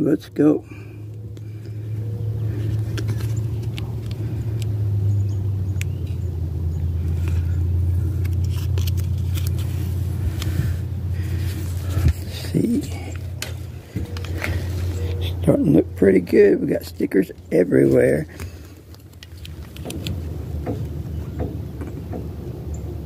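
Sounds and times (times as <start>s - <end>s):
low mechanical rumble: 0.0s - 23.0s
sticker backing peeling crackles: 2.5s - 4.7s, 7.0s - 15.4s, 17.9s - 20.3s.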